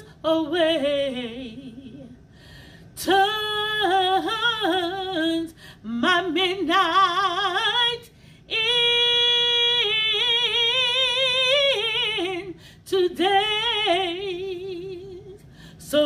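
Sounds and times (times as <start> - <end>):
woman singing unaccompanied: 0.0 - 2.2, 3.0 - 16.0.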